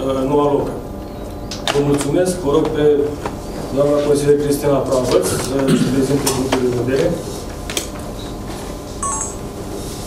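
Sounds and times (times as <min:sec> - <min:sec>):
two-note electronic beep: 0:09.0 - 0:09.5.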